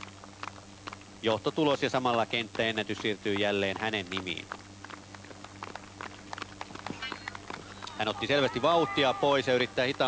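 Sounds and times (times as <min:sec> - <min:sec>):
running footsteps on a track: 0:00.0 - 0:10.0
steady low hum: 0:00.0 - 0:10.0.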